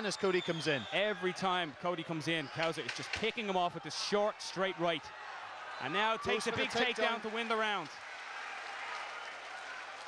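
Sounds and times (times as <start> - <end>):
crowd applauding and cheering: 0.0 - 10.0.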